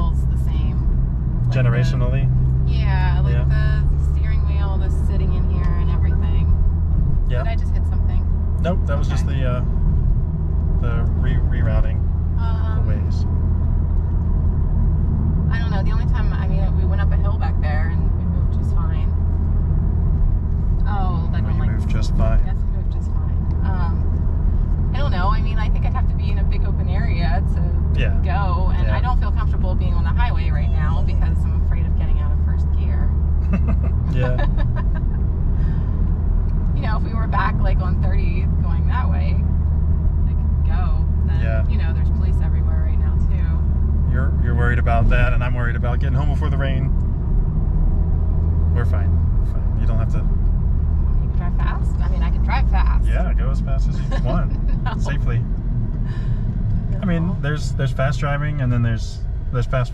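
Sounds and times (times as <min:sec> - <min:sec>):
car engine and tyres drone: 0:00.0 - 0:59.9
voices talking: 0:01.5 - 0:06.5, 0:07.3 - 0:09.7, 0:10.8 - 0:13.2, 0:20.9 - 0:24.1, 0:25.0 - 0:35.2, 0:36.8 - 0:39.4, 0:40.7 - 0:47.0, 0:48.8 - 0:50.2, 0:51.2 - 0:55.5, 0:57.0 - 0:59.9.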